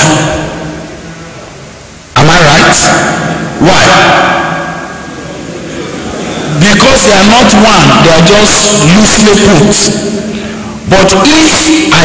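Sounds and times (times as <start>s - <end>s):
microphone hiss: 0.0s - 12.0s
man speaking: 2.2s - 12.0s.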